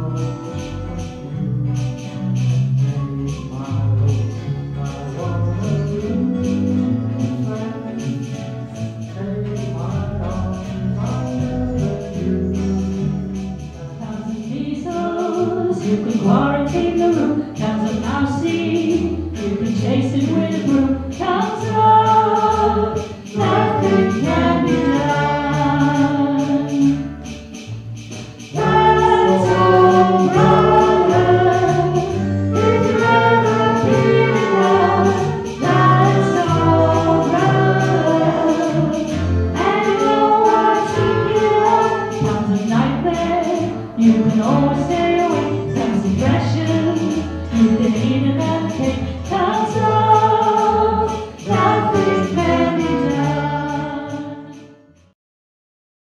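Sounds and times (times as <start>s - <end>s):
low bass notes: 0.0s - 54.5s
guitar accompaniment: 0.0s - 55.1s
people singing: 3.4s - 27.1s, 28.4s - 54.6s.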